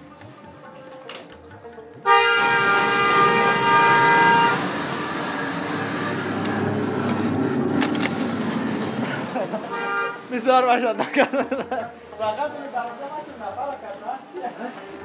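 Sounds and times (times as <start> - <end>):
loud multi-tone horn blast: 2.0 - 7.0, 9.6 - 10.5
continuous noisy rush: 2.8 - 11.4.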